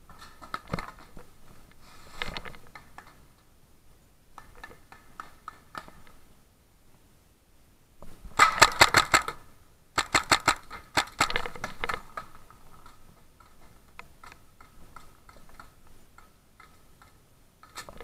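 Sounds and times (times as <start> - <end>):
paintball marker firing bursts: 8.4 - 9.4, 10.0 - 11.4.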